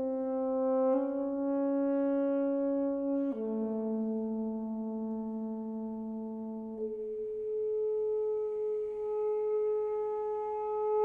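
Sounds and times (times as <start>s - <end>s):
saxophone long steady note: 0.0s - 11.0s.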